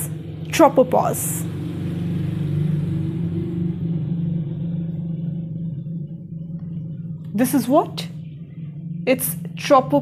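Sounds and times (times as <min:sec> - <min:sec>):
held low tones: 0:00.0 - 0:10.0
low mechanical hum: 0:00.0 - 0:10.0.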